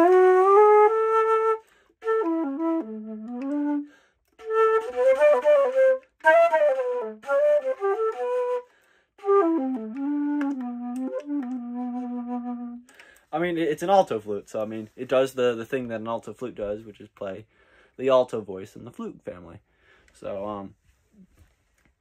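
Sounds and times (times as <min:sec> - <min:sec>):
alto flute melody: 0:00.0 - 0:13.0.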